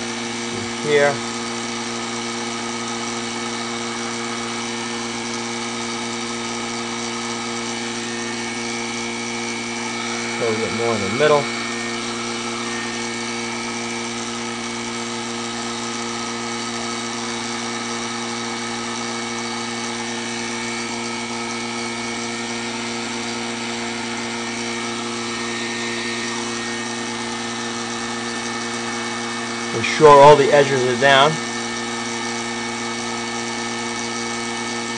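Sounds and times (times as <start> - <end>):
electric motor hum: 0.0 - 34.9.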